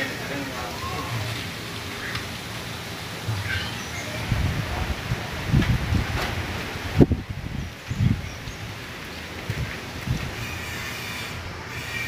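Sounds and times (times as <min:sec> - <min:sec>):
trees rustling: 0:00.0 - 0:12.0
gusty wind on microphone: 0:04.0 - 0:11.6.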